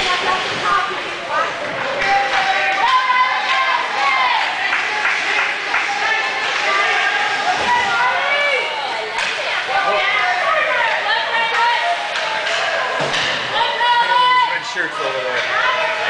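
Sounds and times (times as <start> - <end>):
voices talking and calling out: 0.0 - 16.0.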